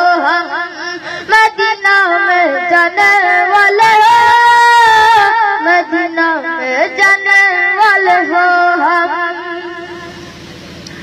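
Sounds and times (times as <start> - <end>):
devotional singing through loudspeaker: 0.0 - 10.5
low hum: 0.0 - 11.0.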